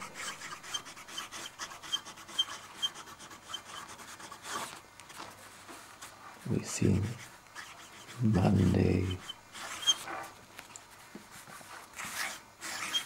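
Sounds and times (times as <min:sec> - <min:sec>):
fountain pen scratching on paper: 0:00.0 - 0:05.2, 0:06.0 - 0:10.4, 0:11.3 - 0:13.0.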